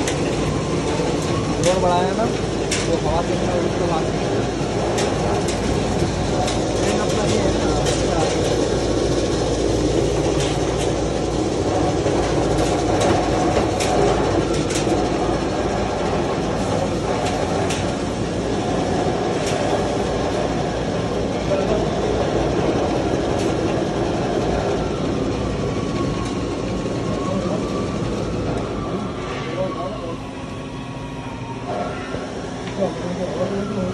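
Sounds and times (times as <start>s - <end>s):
grain cleaning machine rattling: 0.0s - 23.6s.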